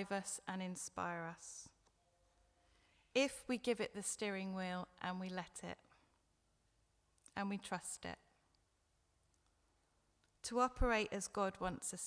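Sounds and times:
woman speaking: 0.0s - 1.8s, 3.2s - 5.9s, 7.3s - 8.3s, 10.4s - 12.0s.

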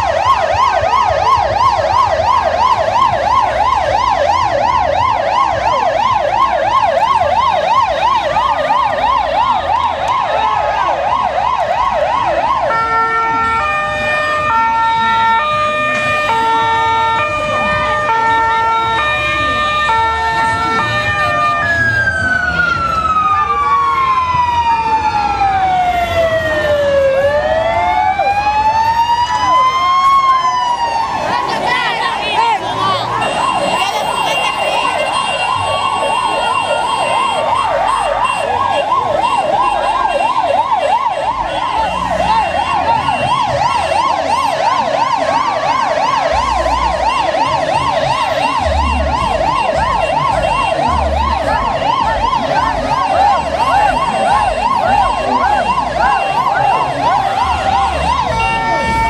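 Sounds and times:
electronic siren yelping: 0.0s - 59.0s.

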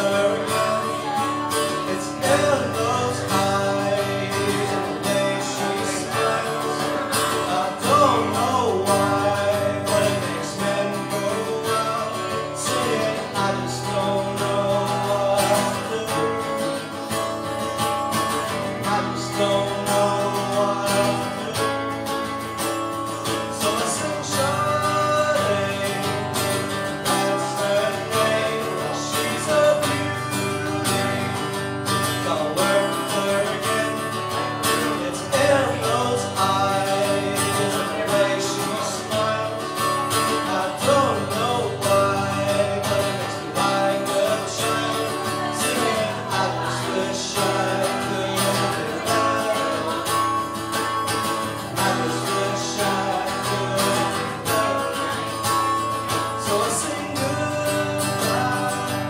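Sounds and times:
acoustic guitar strumming: 0.0s - 59.0s
person singing: 0.0s - 59.0s.

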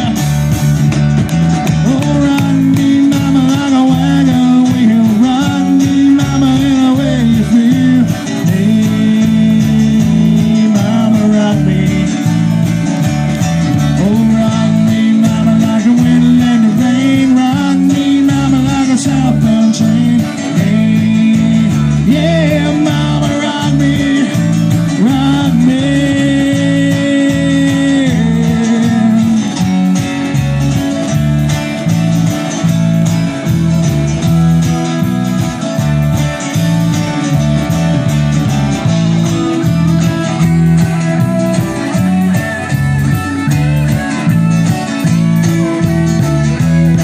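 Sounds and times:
bass guitar: 0.0s - 47.0s
drums: 0.0s - 47.0s
electric guitars: 0.0s - 47.0s.

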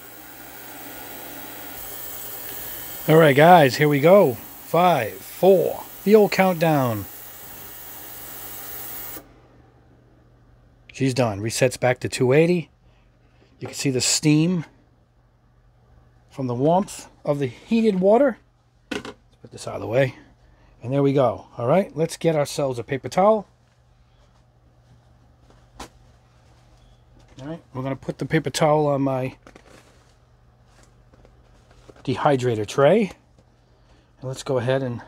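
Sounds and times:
ultrasonic cleaner hissing: 0.0s - 9.4s
steady low hum: 0.0s - 17.8s.

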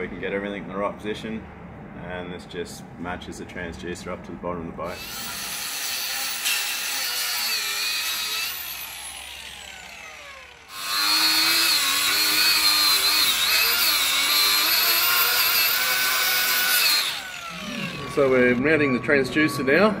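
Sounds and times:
angle grinder cutting: 4.9s - 19.0s.

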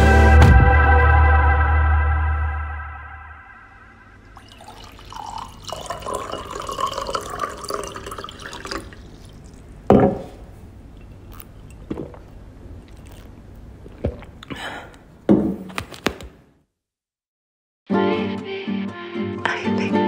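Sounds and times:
water pouring into glass vase: 4.2s - 9.9s.

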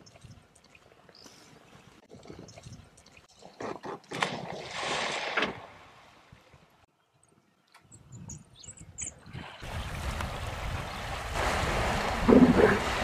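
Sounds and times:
animal splashing through water: 3.4s - 6.2s, 9.6s - 13.0s.

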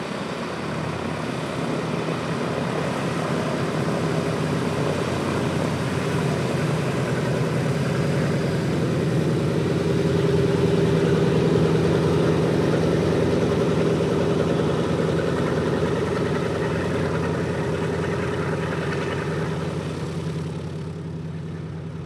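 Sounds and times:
radial aircraft engines droning: 0.0s - 22.0s.

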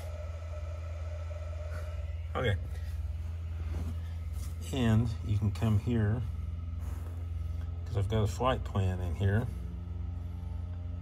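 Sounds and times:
faint steady tone: 0.0s - 11.0s
steady low hum: 0.0s - 11.0s.

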